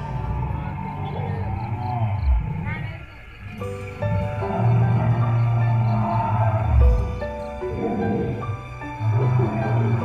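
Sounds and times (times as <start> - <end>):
dinosaur roar: 0.0 - 3.0, 4.0 - 10.0
background music: 0.0 - 10.0.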